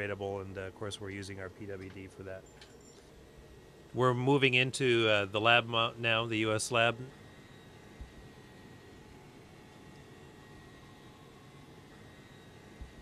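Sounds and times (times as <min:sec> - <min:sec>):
ventilation fans humming: 0:00.0 - 0:13.0.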